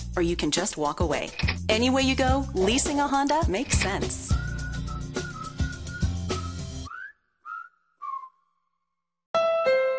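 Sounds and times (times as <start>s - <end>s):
whistled notes: 4.3s - 8.8s.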